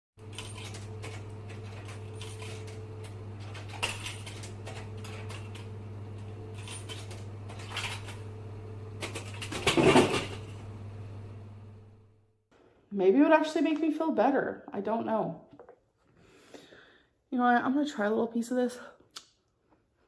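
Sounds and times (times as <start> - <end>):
steady low hum: 0.2 - 12.3
rattling rustling burst: 9.0 - 10.6.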